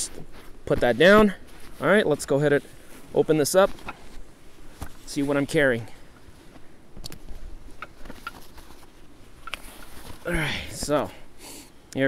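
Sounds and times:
canvas rustling: 0:00.0 - 0:11.1.

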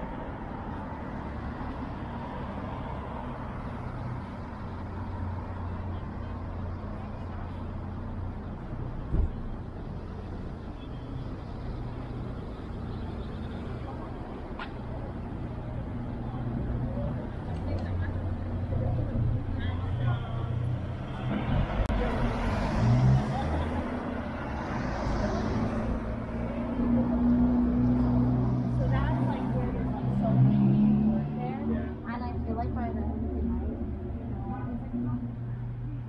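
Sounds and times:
car engines humming: 0:00.0 - 0:36.0
cars passing: 0:00.0 - 0:36.0
people talking: 0:13.4 - 0:24.1, 0:28.0 - 0:36.0.

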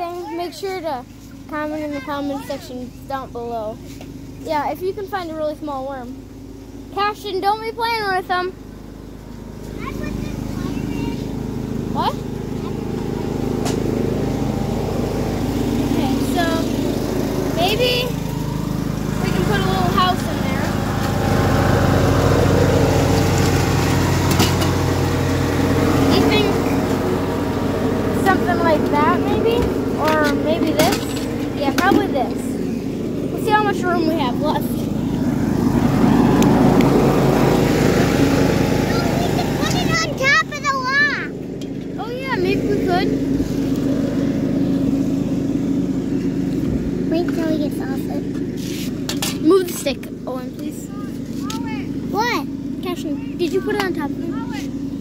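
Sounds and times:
engine humming: 0:00.0 - 0:55.0
high warbling chirps: 0:09.9 - 0:26.4.

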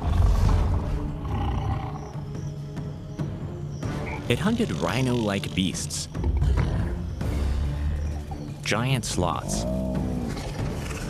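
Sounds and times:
big cat growl: 0:00.0 - 0:02.1, 0:04.5 - 0:07.0, 0:09.4 - 0:11.0.

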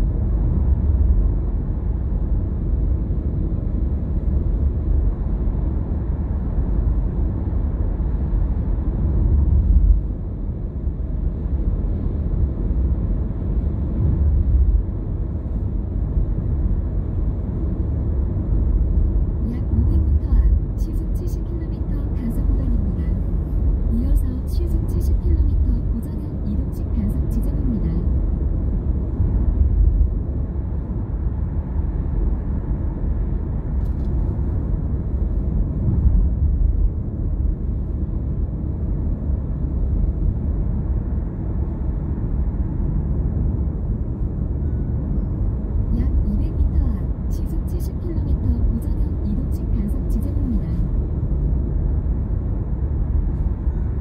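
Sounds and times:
car interior road rumble: 0:00.0 - 0:54.0.

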